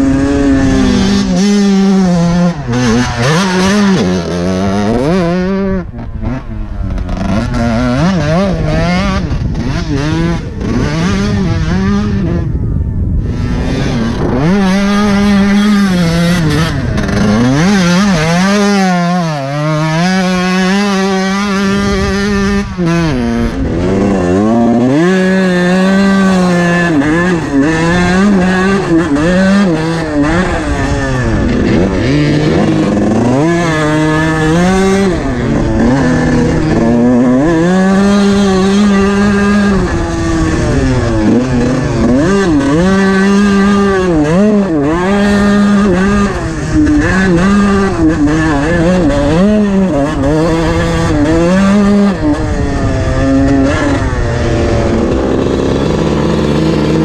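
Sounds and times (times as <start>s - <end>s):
dirt bike engine revving: 0.0s - 57.0s.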